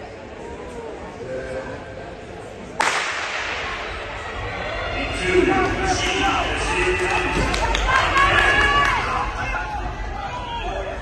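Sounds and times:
starting pistol crack: 2.8s - 3.7s.

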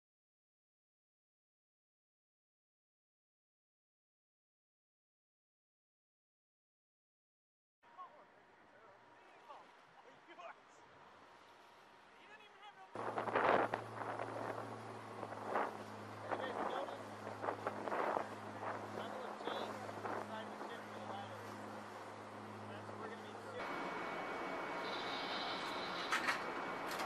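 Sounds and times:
boat engine droning: 7.9s - 27.0s
water splashing against hull: 13.0s - 22.2s.

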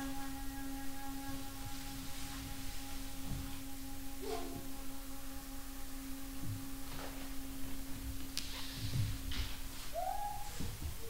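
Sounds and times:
wooden flute notes: 0.0s - 11.0s.

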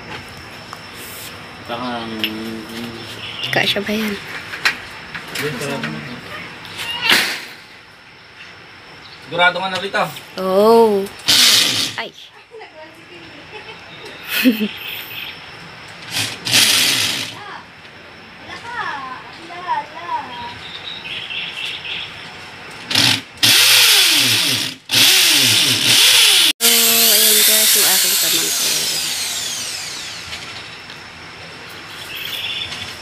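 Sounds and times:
cordless drill boring into masonry: 11.3s - 12.0s, 16.1s - 17.4s, 22.9s - 30.7s.

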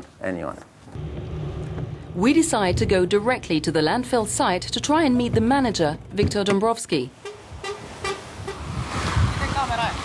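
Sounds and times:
engine rumble: 0.9s - 10.0s.

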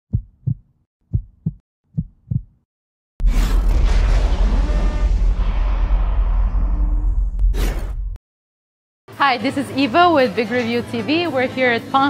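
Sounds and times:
heartbeat thumps: 0.1s - 2.6s.

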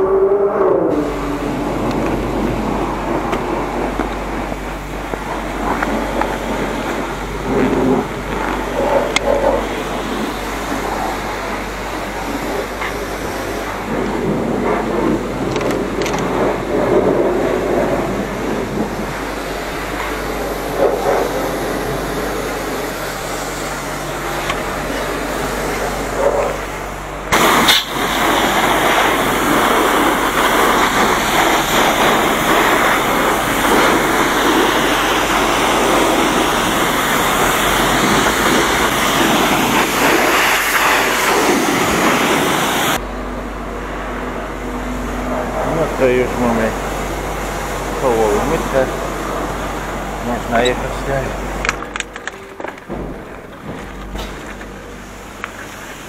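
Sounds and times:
pressure washer spraying water: 0.9s - 43.0s, 43.7s - 51.6s, 53.2s - 56.0s.

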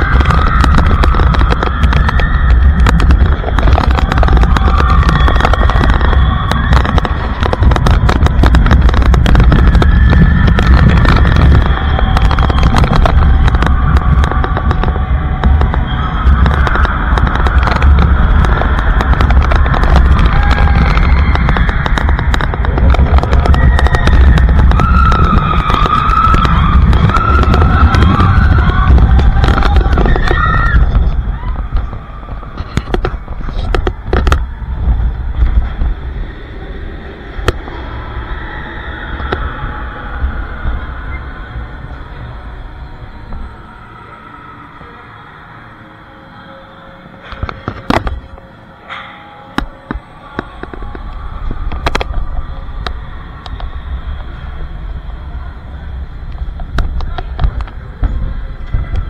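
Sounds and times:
scattered clicks: 0.0s - 36.0s, 37.3s - 37.9s
music: 0.0s - 59.0s
roller coaster rumbling on track: 0.0s - 59.0s.

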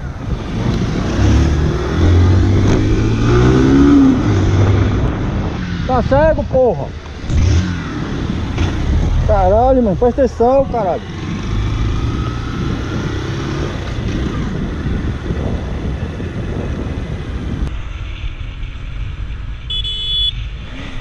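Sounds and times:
motorcycle engine: 0.0s - 21.0s
short horn honk: 19.7s - 20.4s.

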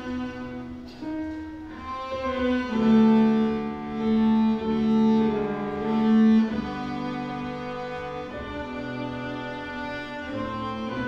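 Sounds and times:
cello bowed notes: 0.0s - 11.0s.

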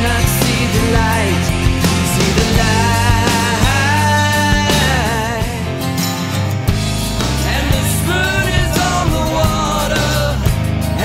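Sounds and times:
rock band playing loudly: 0.0s - 11.0s
steady drum beat: 0.0s - 11.0s.

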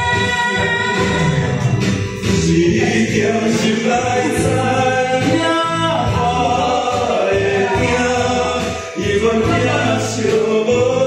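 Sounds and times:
amplified backing music: 0.0s - 11.0s
man singing into a microphone: 2.2s - 11.0s.

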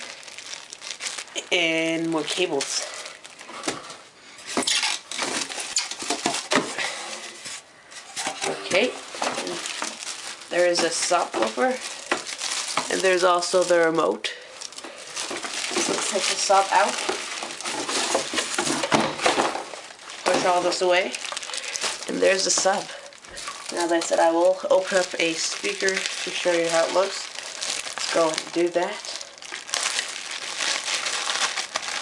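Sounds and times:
rustling of cardboard and plastic: 0.0s - 32.0s.

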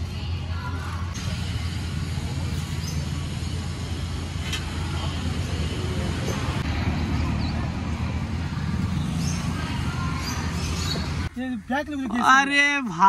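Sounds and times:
low traffic rumble: 0.0s - 13.0s.

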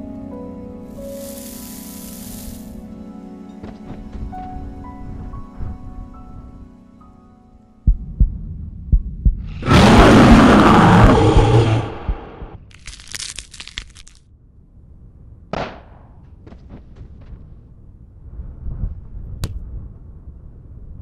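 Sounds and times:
hissing bursts: 0.9s - 2.8s
double heartbeat thumps: 7.8s - 12.7s.

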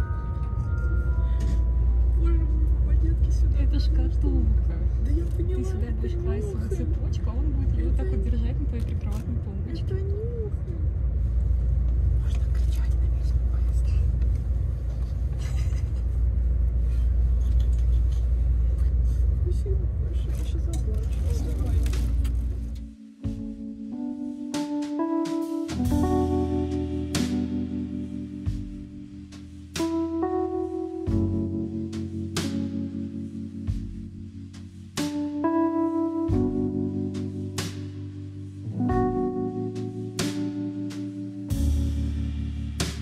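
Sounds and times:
train rumble inside carriage: 0.0s - 22.8s.

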